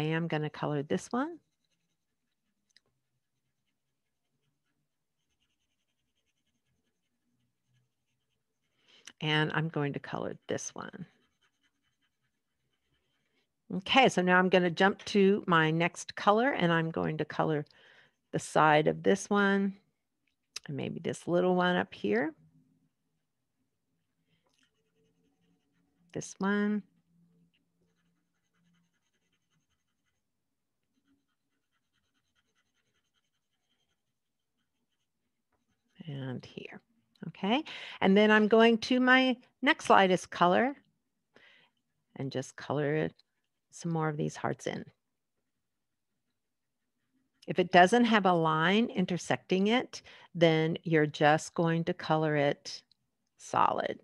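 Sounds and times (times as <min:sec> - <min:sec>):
woman speaking: 0:00.0 - 0:01.4, 0:09.1 - 0:11.2, 0:13.7 - 0:17.7, 0:18.3 - 0:19.8, 0:20.6 - 0:22.4, 0:26.2 - 0:26.9, 0:36.0 - 0:40.8, 0:42.2 - 0:43.2, 0:43.8 - 0:45.0, 0:47.4 - 0:52.8, 0:53.4 - 0:54.0
pencil scratching on paper: 0:00.0 - 0:19.6, 0:23.7 - 0:36.8.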